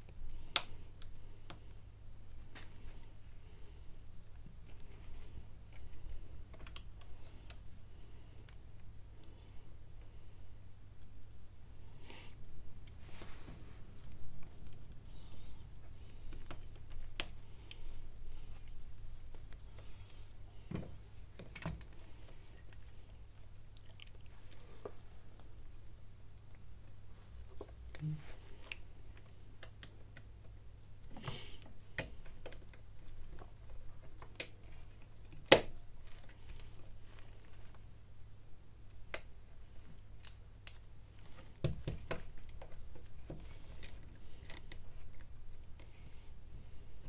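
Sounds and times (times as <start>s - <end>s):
faint low hum: 0.0s - 47.0s.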